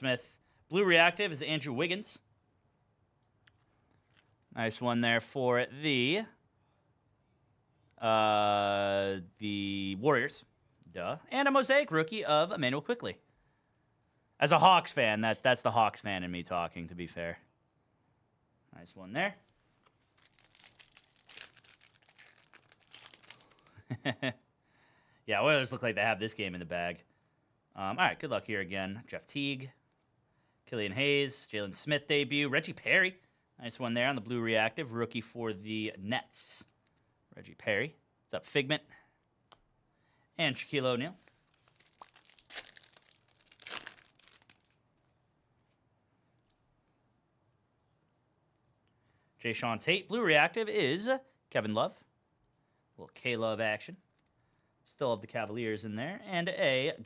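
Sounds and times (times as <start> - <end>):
crackles of cards pulled out: 3.5 - 4.5, 19.5 - 23.8, 41.2 - 44.8
foil wrapper crinkling and tearing: 4.0 - 4.4, 19.8 - 23.9, 41.2 - 44.8.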